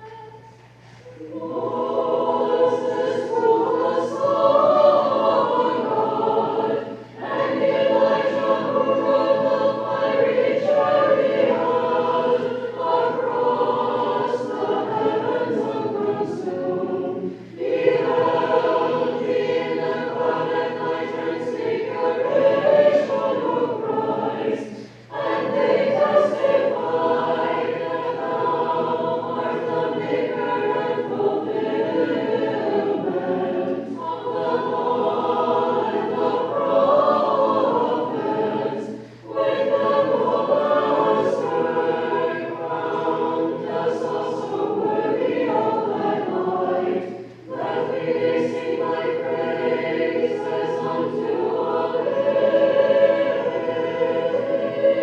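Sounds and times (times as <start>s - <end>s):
choir singing unaccompanied chant: 0.0s - 55.0s.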